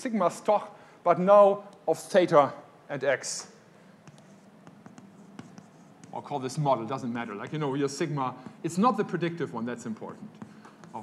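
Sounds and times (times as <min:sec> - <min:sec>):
chalk scratching on blackboard: 0:04.0 - 0:08.7, 0:10.3 - 0:11.0
chalk tapping on board: 0:04.0 - 0:09.0, 0:10.1 - 0:11.0.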